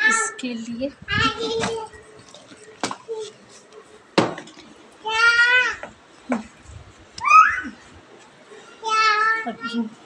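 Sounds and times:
small child calling: 0:05.0 - 0:05.9, 0:07.2 - 0:07.8.

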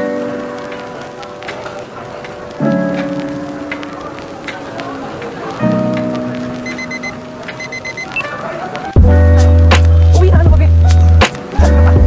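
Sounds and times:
synth music: 0:02.5 - 0:12.0.

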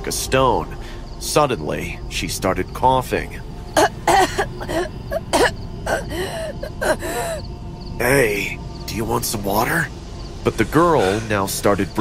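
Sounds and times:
woman coughing: 0:03.8 - 0:07.4.

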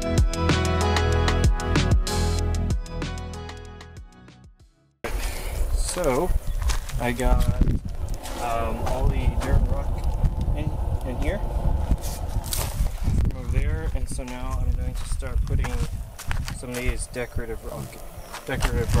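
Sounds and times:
steady low rumble: 0:05.2 - 0:19.0.

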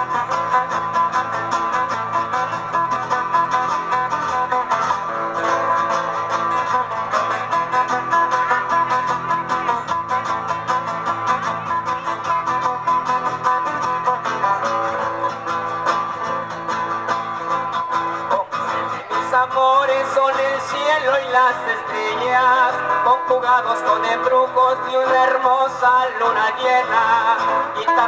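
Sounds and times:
acoustic guitars playing: 0:00.0 - 0:28.0.

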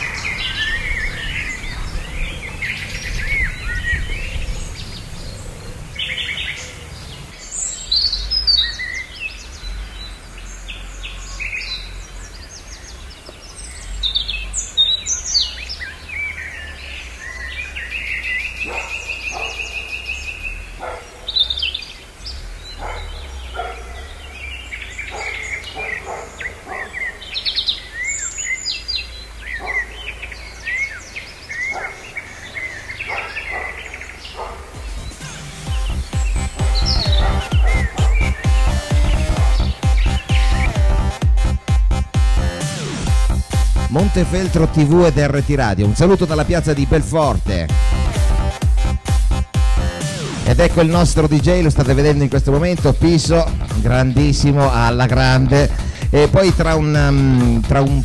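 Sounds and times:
bird trill: 0:00.0 - 0:58.0
small birds chirping: 0:00.0 - 0:58.0.

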